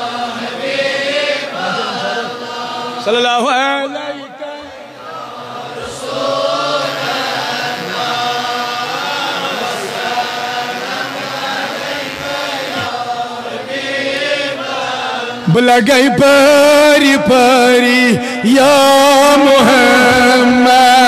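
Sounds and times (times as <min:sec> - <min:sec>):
men chanting together: 0:00.0 - 0:03.2, 0:03.9 - 0:21.0.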